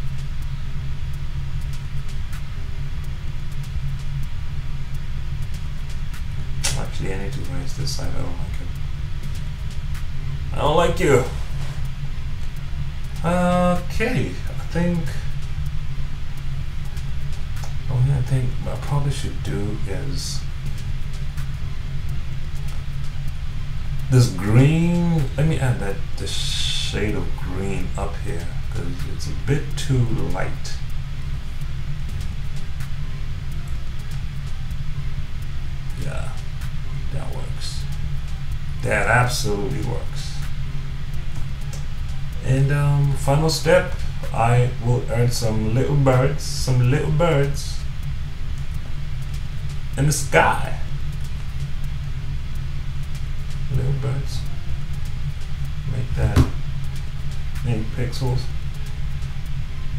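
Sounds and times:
faint ticks: 0.0s - 59.9s
steady low rumble: 0.0s - 59.9s.

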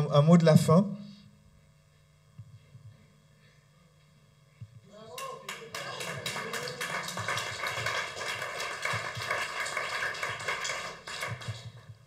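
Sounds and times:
audience applauding: 5.0s - 11.9s.

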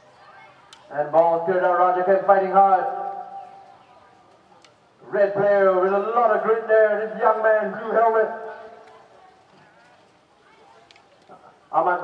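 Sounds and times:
quiet outdoor background: 0.0s - 12.0s
man commentating: 5.0s - 8.4s.

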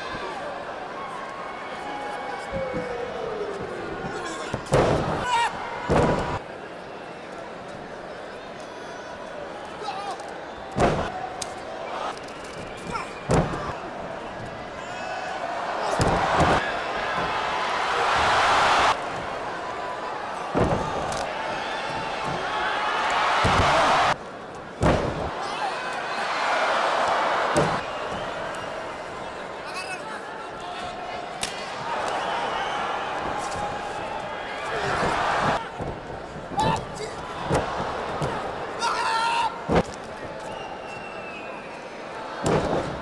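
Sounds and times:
crowd noise: 0.0s - 43.0s.

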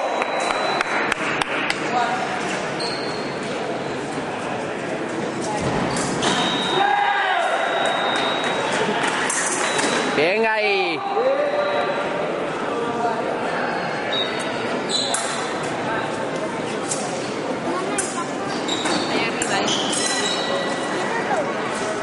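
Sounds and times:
shoes squeaking on floor: 2.7s - 3.5s, 14.1s - 15.4s, 18.5s - 20.9s.

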